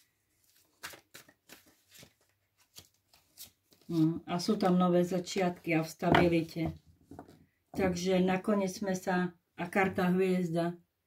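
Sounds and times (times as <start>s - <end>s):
cards rustling and tapping: 0.4s - 5.4s.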